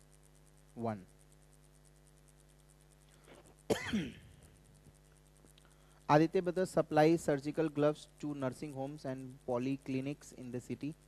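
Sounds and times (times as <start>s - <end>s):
man clearing throat: 3.7s - 4.4s.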